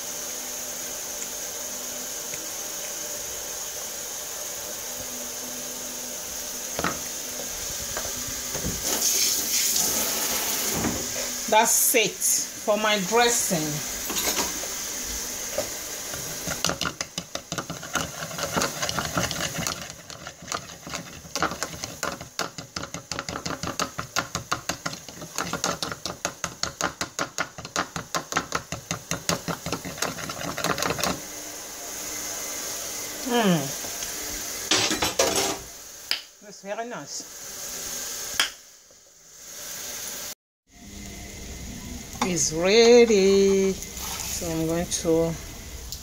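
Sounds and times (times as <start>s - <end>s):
utensil whisking in plastic bowl: 16.4s - 26.9s, 27.6s - 31.2s.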